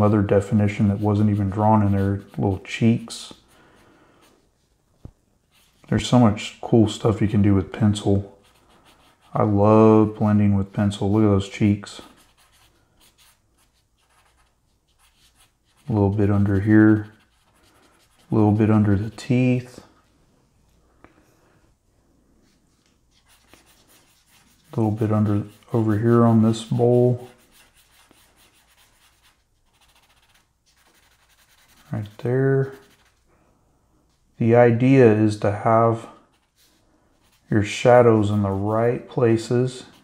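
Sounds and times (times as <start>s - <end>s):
blending stump scratching on paper: 0.0s - 3.6s, 11.9s - 19.2s, 23.1s - 33.2s, 39.7s - 40.0s.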